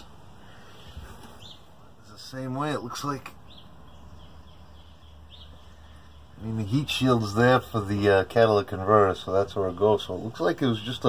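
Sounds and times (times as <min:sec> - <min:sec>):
high bird chirp: 0:00.0 - 0:07.8.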